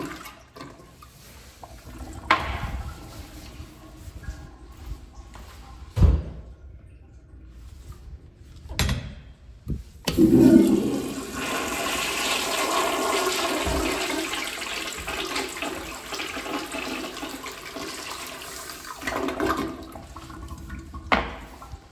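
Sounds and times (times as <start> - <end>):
toilet flushing: 0.0 - 5.6, 10.1 - 21.9.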